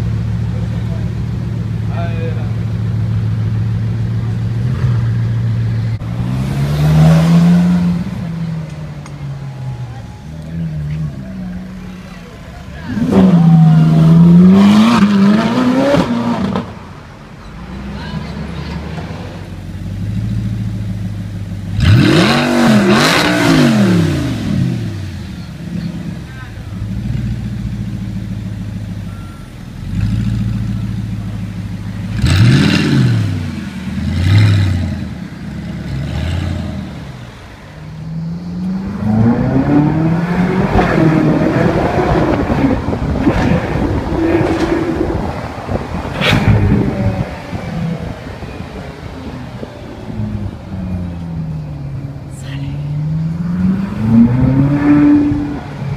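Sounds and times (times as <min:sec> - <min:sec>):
car accelerating: 0:00.0 - 0:55.9
car engines idling and revving: 0:00.0 - 0:55.9.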